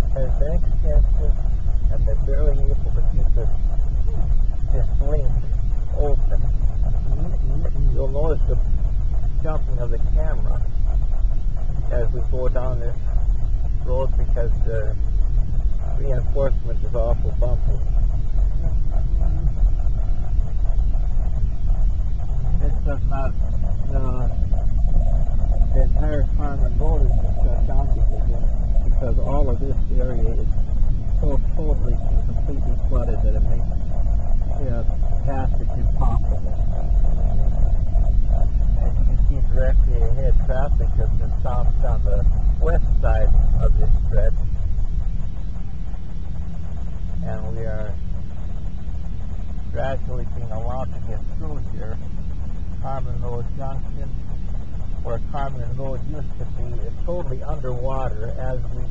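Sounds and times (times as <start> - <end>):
person talking: 0.0 - 3.5, 4.1 - 6.4, 7.0 - 8.6, 9.4 - 10.6, 11.8 - 13.0, 13.8 - 15.0, 15.9 - 18.0, 22.4 - 24.4, 25.6 - 30.5, 31.2 - 33.7, 34.5 - 36.6, 38.8 - 44.3, 47.2 - 48.0, 49.8 - 52.0, 52.8 - 54.1, 55.0 - 58.9
road and engine rumble in car: 0.0 - 58.9.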